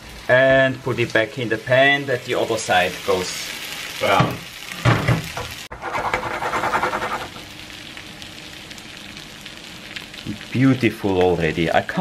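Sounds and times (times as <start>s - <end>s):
potato sizzling in a frying pan: 0.0s - 12.0s.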